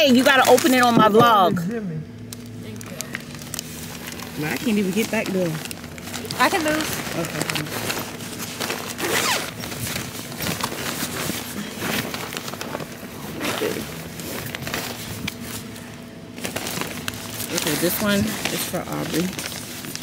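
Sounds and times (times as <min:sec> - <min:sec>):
device rubbing against clothing: 0:07.6 - 0:11.6.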